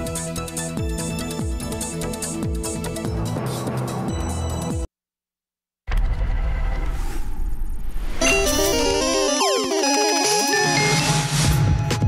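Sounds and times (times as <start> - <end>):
rushing sound effect with deep rumble: 5.9 - 8.2.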